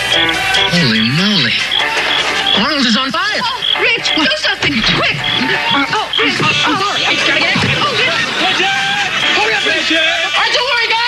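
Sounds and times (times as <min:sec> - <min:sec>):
music with repeating high tone: 0:00.0 - 0:07.4
men shouting for help: 0:00.4 - 0:11.0.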